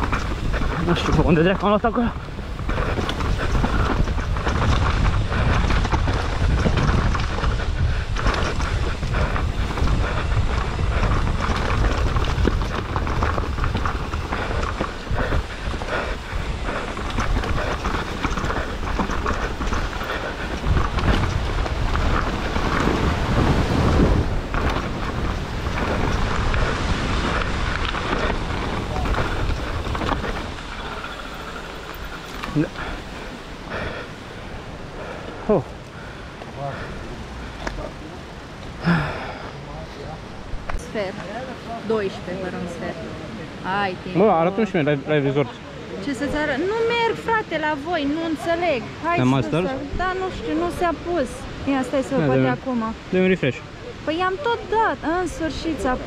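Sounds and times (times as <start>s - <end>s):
bike frame and chain rattling: 0.0s - 33.2s
bike tyres on dirt and roots: 0.0s - 41.4s
wind buffeting microphone: 0.0s - 56.0s.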